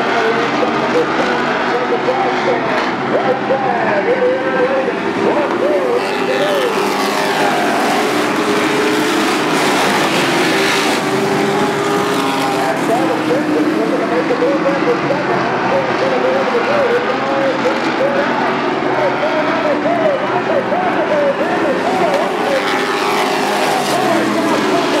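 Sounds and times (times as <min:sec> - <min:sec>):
voice over loudspeaker: 0:00.0 - 0:10.4, 0:11.6 - 0:25.0
race truck engines passing: 0:00.0 - 0:25.0.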